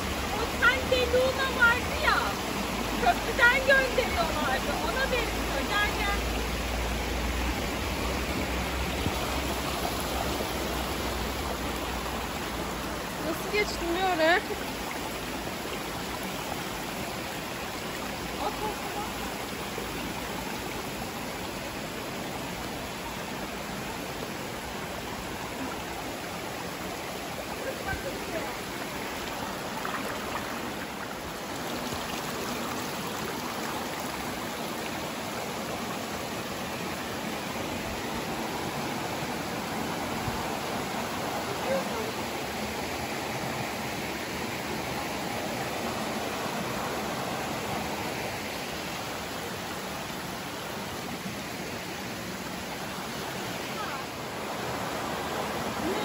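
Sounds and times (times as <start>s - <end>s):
forest stream rushing: 0.0s - 56.0s.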